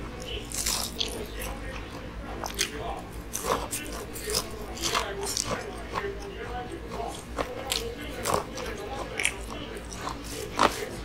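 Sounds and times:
crunchy chewing of fried chicken: 0.0 - 11.0.

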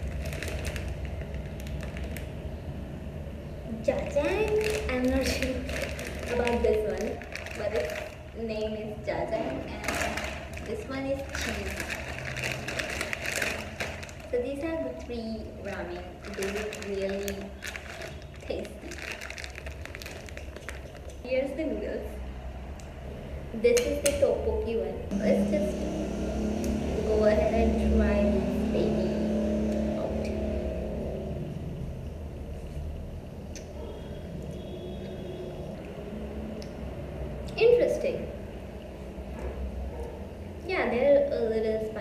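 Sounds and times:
plastic packets crinkling: 0.0 - 2.5, 3.8 - 8.7, 9.4 - 14.7, 15.6 - 21.2
steady low hum: 24.6 - 40.7.

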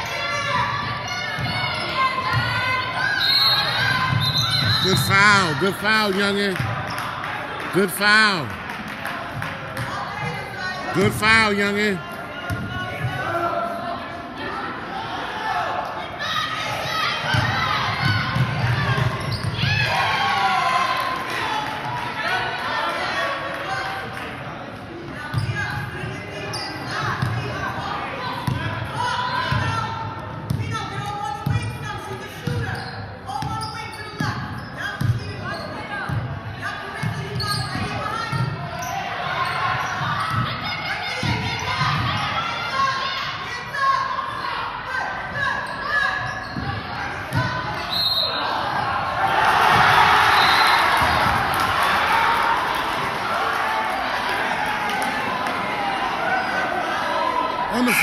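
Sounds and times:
voices of players and spectators: 0.0 - 58.0
basketball bouncing on gym floor: 35.0 - 35.2.

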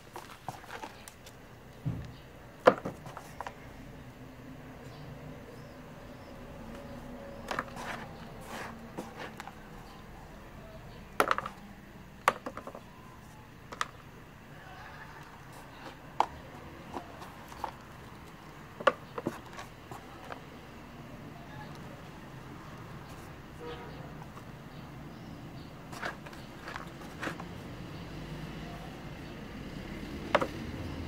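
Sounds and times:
soil scraping against plastic: 0.0 - 1.3, 6.7 - 10.0, 15.4 - 20.5, 25.6 - 27.7.

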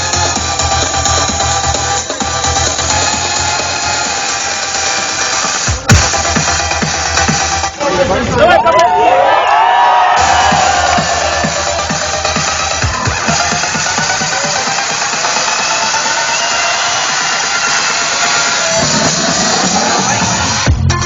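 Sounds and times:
loud electronic dance music: 0.0 - 21.0.

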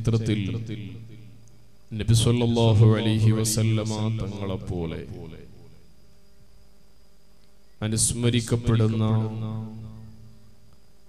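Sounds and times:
man speaking: 0.0 - 1.1, 1.9 - 5.5, 7.8 - 9.8
faint hum with high whine: 0.0 - 11.0.

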